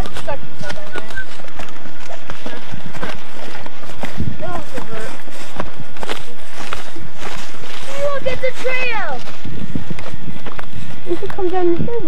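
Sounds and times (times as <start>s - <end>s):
footsteps through shrubs: 0.0s - 12.0s.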